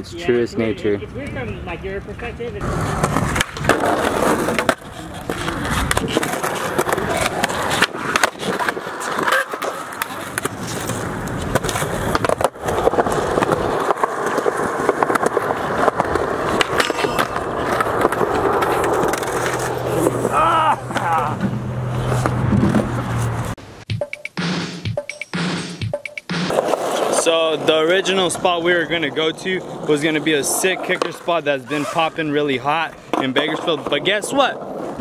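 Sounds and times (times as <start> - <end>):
skateboard wheels rolling on concrete: 0.0 - 23.6, 26.5 - 35.0
skateboard clacks: 2.6 - 21.1.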